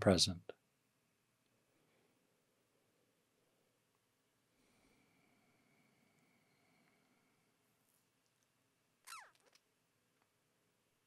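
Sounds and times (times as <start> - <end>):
faint falling squeak: 9.0 - 9.6.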